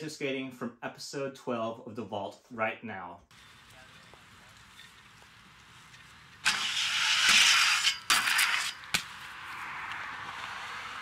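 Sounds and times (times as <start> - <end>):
skates scraping a metal rail: 4.6 - 10.5
skates hitting a metal rail: 6.4 - 9.4.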